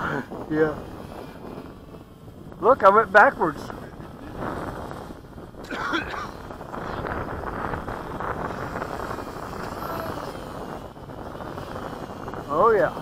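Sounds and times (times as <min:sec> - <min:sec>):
model aircraft motor whine: 0:00.0 - 0:13.0
wind buffeting microphone: 0:00.0 - 0:13.0.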